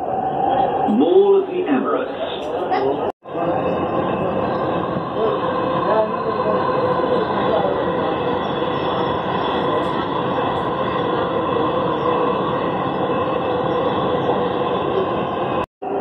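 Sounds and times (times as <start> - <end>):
train wheels rumbling on rail: 3.3 - 16.0.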